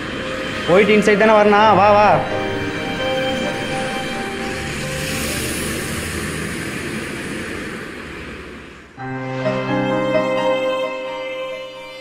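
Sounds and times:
bus passing: 0:00.0 - 0:12.0.

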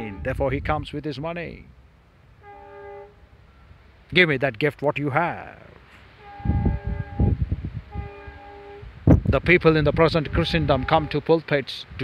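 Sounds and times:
horn blasts: 0:00.0 - 0:00.7, 0:02.3 - 0:03.7, 0:06.0 - 0:09.0, 0:10.0 - 0:11.3.

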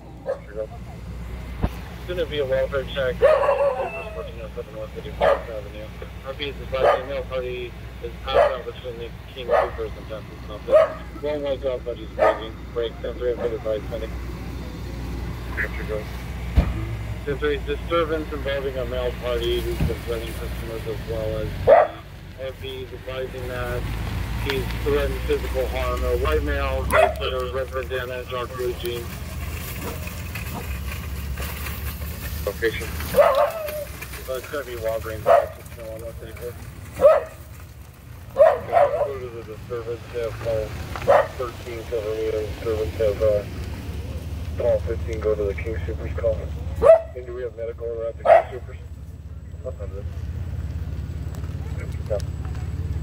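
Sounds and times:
car engines idling: 0:00.0 - 0:53.0.

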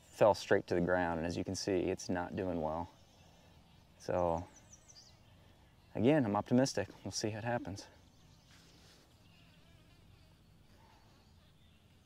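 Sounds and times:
bee buzzing: 0:08.0 - 0:12.0.

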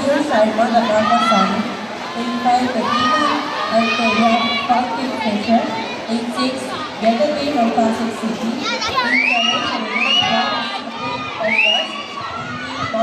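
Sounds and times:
crowd noise: 0:00.0 - 0:13.0
spectators cheering and shouting: 0:00.0 - 0:13.0.

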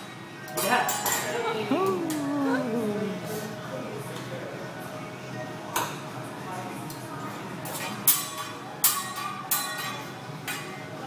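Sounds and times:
metal spatulas clinking: 0:07.7 - 0:10.8.

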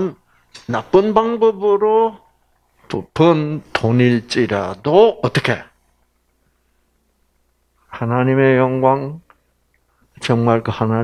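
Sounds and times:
faint low hum: 0:00.0 - 0:11.0
man speaking through microphone: 0:02.9 - 0:05.7.

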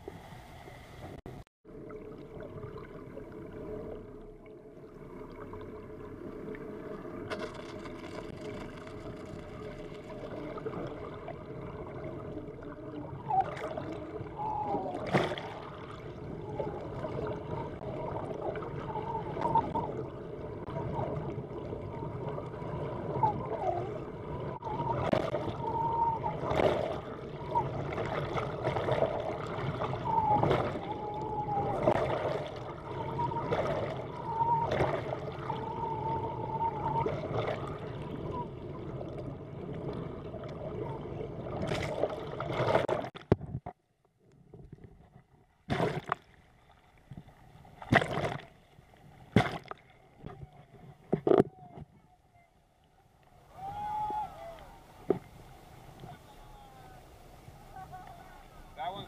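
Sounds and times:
underwater water noise: 0:00.0 - 0:59.0
wavering whistle-like tones: 0:12.0 - 0:15.6, 0:16.2 - 0:22.2, 0:22.9 - 0:28.0, 0:29.6 - 0:38.7, 0:53.5 - 0:55.0, 0:55.9 - 0:59.0
sharp clicks or splashes: 0:47.8 - 0:48.5, 0:49.3 - 0:50.4.

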